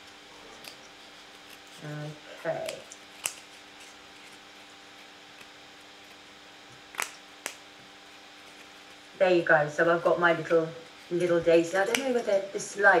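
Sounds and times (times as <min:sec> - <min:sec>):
faint steady hum: 0:00.0 - 0:13.0
scissors snipping cardboard: 0:02.6 - 0:04.4, 0:11.9 - 0:12.2.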